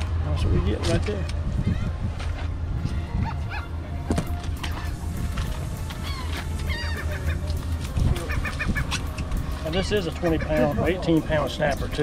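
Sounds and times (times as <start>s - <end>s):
steady low rumble: 0.0s - 12.0s
birds honking: 3.1s - 11.3s.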